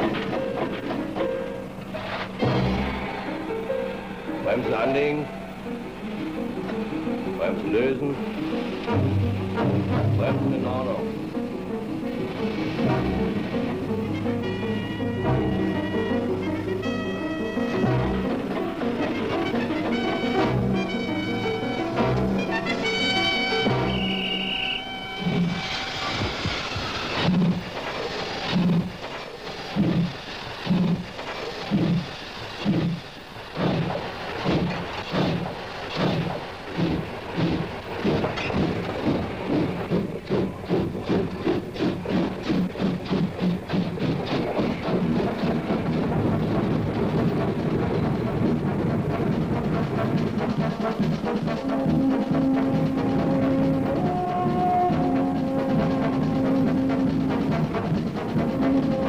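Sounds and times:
music: 0:00.0 - 0:59.0
steam locomotive exhaust chuffs: 0:00.0 - 0:59.0.

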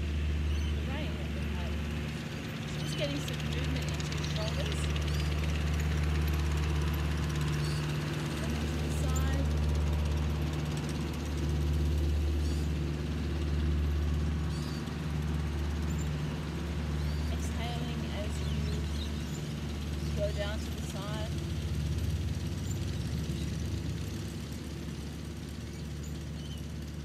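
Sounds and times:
tractor engine droning: 0:00.0 - 0:27.0.

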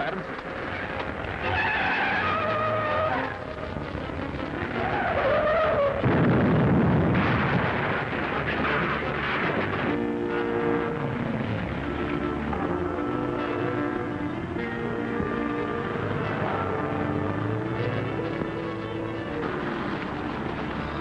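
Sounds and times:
tyres squealing: 0:00.0 - 0:06.1
music: 0:00.0 - 0:21.0
speeding car: 0:00.0 - 0:21.0
car crash rumble: 0:00.3 - 0:12.7.

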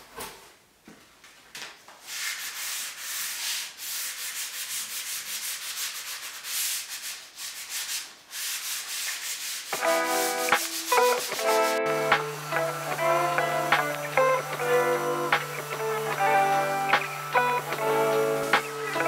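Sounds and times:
sandpaper rasping on wood: 0:02.1 - 0:11.8
acoustic guitar music: 0:09.8 - 0:19.0.

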